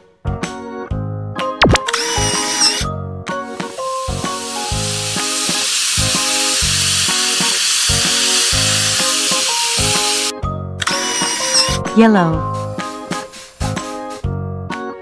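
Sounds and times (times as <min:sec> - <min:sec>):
light background music with piano: 0:00.0 - 0:15.0
short click: 0:01.6 - 0:02.4
spray-paint hiss: 0:03.6 - 0:10.3.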